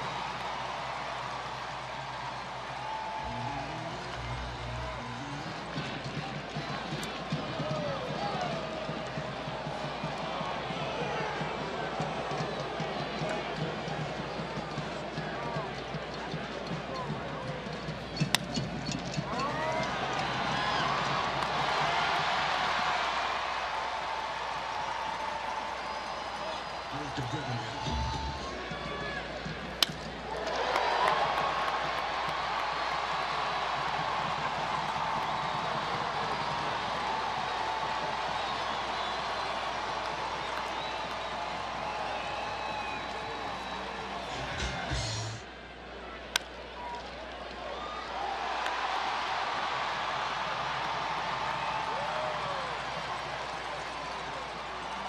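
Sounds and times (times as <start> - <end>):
crowd cheering: 0.0 - 55.0
crowd noise: 0.0 - 55.0
baseball bat cracking ball: 29.8 - 30.1.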